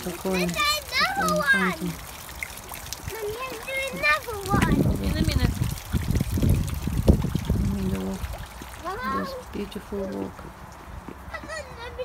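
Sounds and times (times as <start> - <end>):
water trickling from a fountain: 0.0 - 12.0
crackly low rumbling noise: 4.4 - 8.7.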